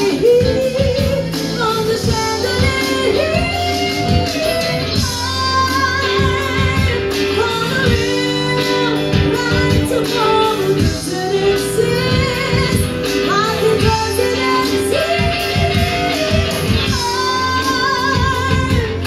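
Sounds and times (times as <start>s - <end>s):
drum kit: 0.0s - 19.0s
electric guitar: 0.0s - 19.0s
woman singing with vibrato: 0.0s - 19.0s.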